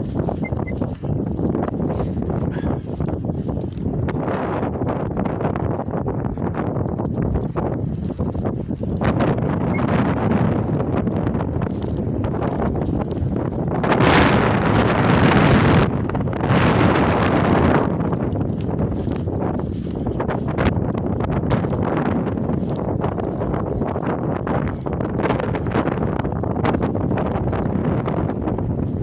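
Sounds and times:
footsteps through dry grass: 0.0 - 29.0
wind buffeting microphone: 0.0 - 29.0.

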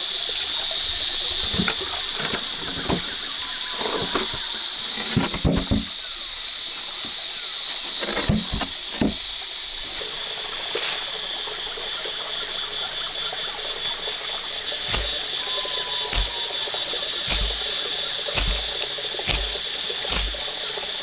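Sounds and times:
stream running: 0.0 - 21.0
high-pitched drone: 14.9 - 17.8.

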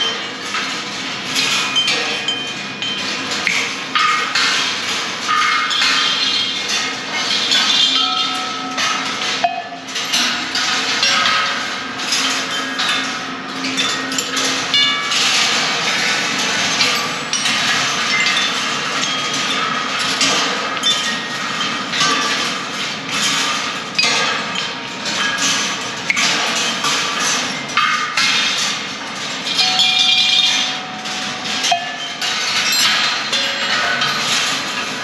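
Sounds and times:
short ringing percussion tones: 8.0 - 9.9.

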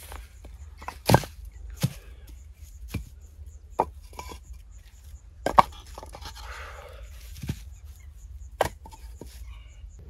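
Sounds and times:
bricks knocking together: 0.0 - 4.6, 5.4 - 6.5, 7.3 - 7.8, 8.5 - 9.4.

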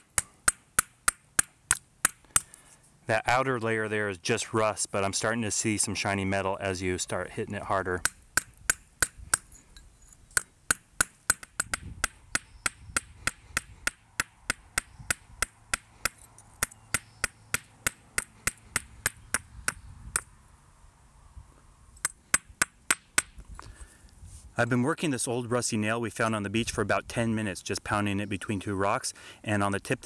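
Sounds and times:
stone striking metal nail: 0.0 - 2.6, 8.0 - 9.6, 10.3 - 20.3, 22.0 - 23.4.

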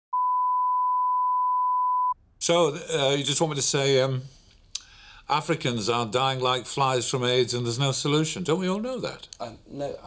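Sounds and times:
steady pure beep tone: 0.1 - 2.2.

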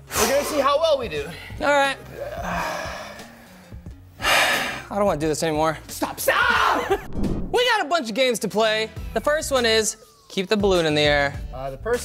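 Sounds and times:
quiet background music: 0.0 - 12.0
man sighing: 2.2 - 4.8.

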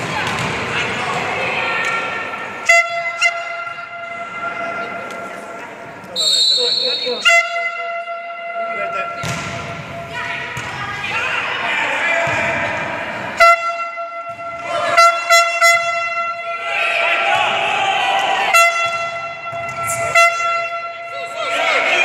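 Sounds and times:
volleyball slaps: 0.0 - 2.2, 9.2 - 10.8, 12.2 - 13.0, 17.3 - 20.5
horn blasts: 13.4 - 16.6, 18.4 - 21.1
people shouting: 16.4 - 18.9, 21.1 - 22.0.

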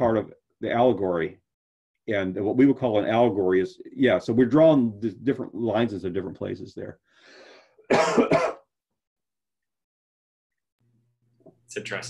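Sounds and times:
person coughing: 7.8 - 8.7.

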